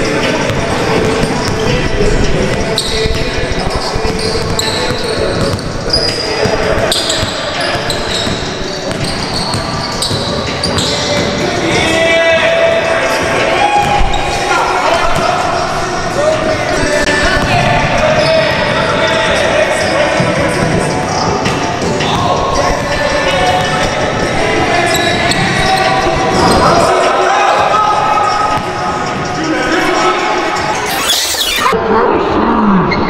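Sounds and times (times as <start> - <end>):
players' voices: 0.0 - 33.0
sneaker squeaks: 0.2 - 12.0, 13.4 - 15.4, 16.7 - 18.6, 21.4 - 26.7, 30.7 - 31.8
basketball dribbling on hardwood: 4.0 - 5.8.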